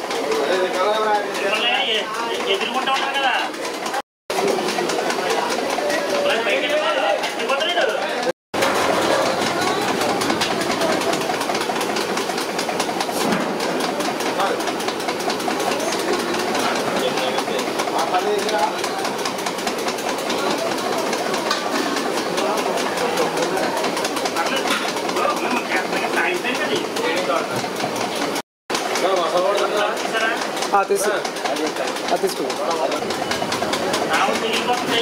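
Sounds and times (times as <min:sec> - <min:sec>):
rhythmic mechanical clatter: 0:00.0 - 0:35.0.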